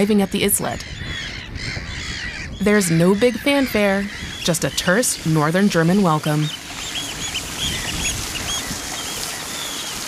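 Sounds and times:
high chirping bird calls: 0.0s - 10.0s
hose spraying water onto sand: 4.9s - 10.0s.

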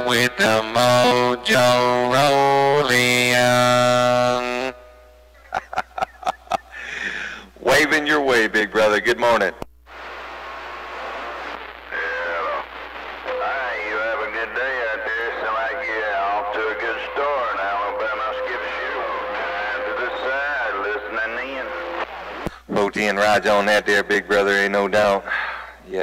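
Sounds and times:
radio static: 0.0s - 4.6s, 5.4s - 25.5s
garbled radio voice: 11.8s - 25.3s.

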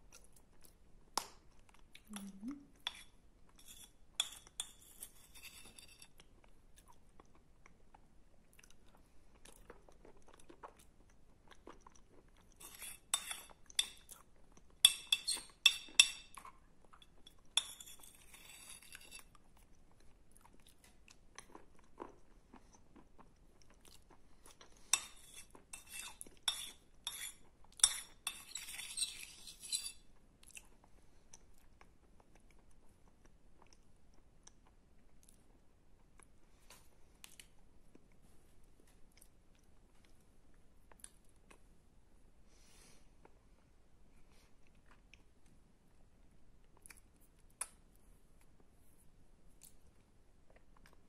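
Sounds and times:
metal spoon scraping ceramic bowl: 2.8s - 6.2s, 12.6s - 14.0s, 14.8s - 16.4s, 17.6s - 19.3s, 24.9s - 30.0s
crunching and chewing: 16.4s - 28.2s.

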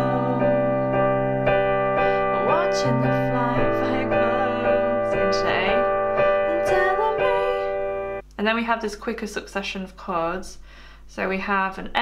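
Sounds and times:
person singing: 0.0s - 1.4s, 2.0s - 8.0s
piano chords: 0.0s - 8.2s.

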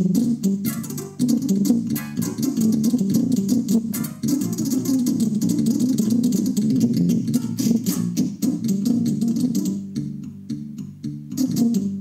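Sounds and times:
rapid low keyboard notes: 0.0s - 12.0s.

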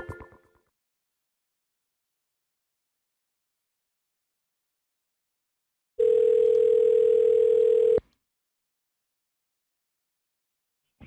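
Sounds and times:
telephone dial tone: 6.0s - 8.0s.

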